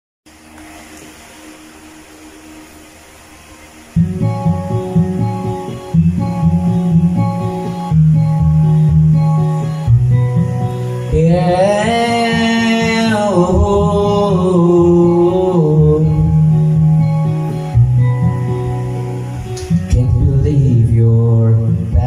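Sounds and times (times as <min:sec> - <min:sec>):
pop backing track from tv: 0:03.7 - 0:22.0
people singing: 0:11.1 - 0:16.3.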